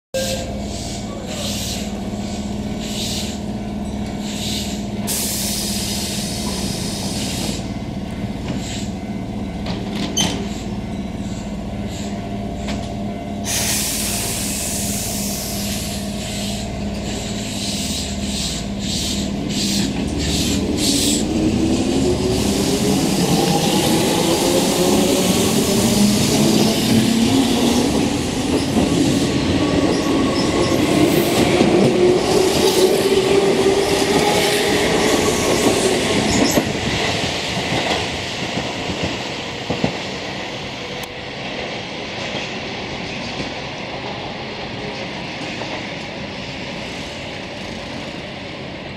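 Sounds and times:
air hissing from train: 0:00.2 - 0:07.8, 0:08.4 - 0:09.0, 0:10.2 - 0:12.8, 0:13.4 - 0:38.6, 0:46.2 - 0:48.3
electric train humming: 0:00.2 - 0:44.8.

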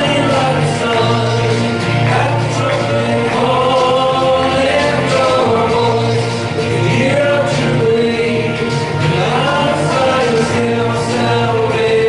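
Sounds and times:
gospel voices singing: 0:00.0 - 0:12.0
instrumental backing with bass: 0:00.0 - 0:12.0.

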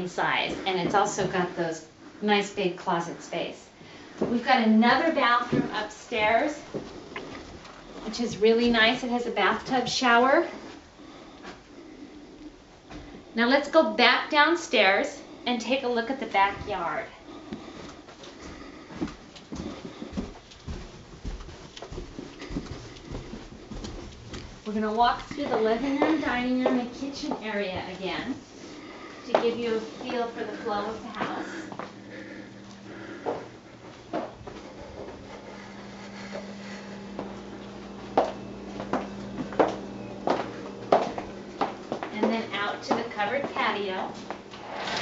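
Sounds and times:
steady low hum: 0:00.0 - 0:45.0
footsteps down wooden stairs: 0:17.6 - 0:27.9, 0:29.3 - 0:36.4, 0:37.1 - 0:43.6.

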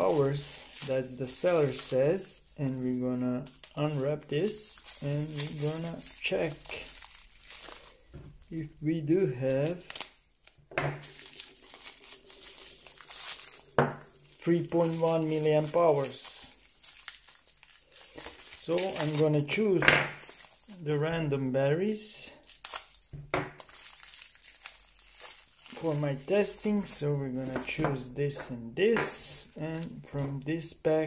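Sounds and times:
sharp plastic crackle: 0:00.0 - 0:21.2, 0:22.2 - 0:30.3
plastic wrapping crinkling: 0:00.0 - 0:30.8.

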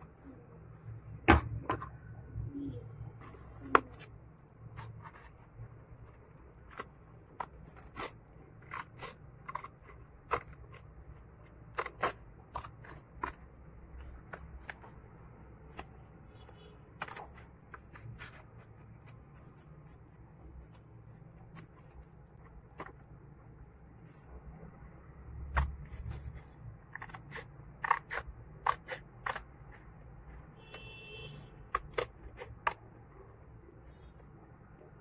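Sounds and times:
scissors snipping paper: 0:06.1 - 0:13.4, 0:17.0 - 0:19.7, 0:25.5 - 0:30.4, 0:31.6 - 0:33.1.

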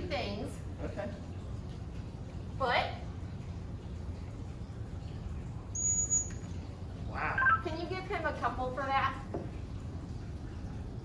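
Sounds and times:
low background rumble: 0:00.0 - 0:11.0.

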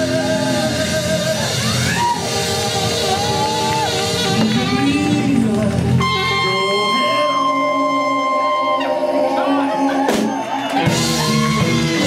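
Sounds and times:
live band with saxophone and trumpet: 0:00.0 - 0:12.0.

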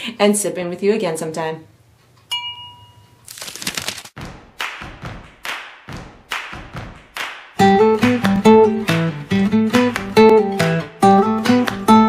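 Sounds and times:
acoustic guitar strumming: 0:07.6 - 0:12.0.

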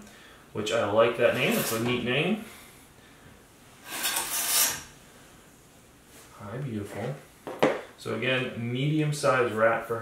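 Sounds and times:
glass panel scraping along track: 0:01.3 - 0:02.0, 0:03.8 - 0:04.9.

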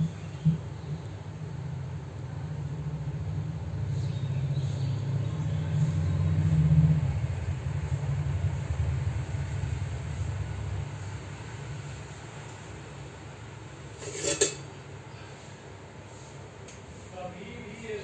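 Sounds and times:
low rumble: 0:04.9 - 0:12.2.

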